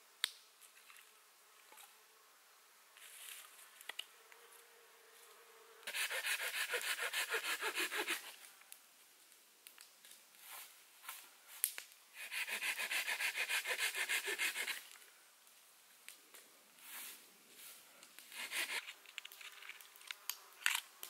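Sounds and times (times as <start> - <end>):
faint steady buzz: 0.0 - 6.0
knife scraping wood: 5.9 - 8.4, 12.2 - 14.8, 18.3 - 19.2.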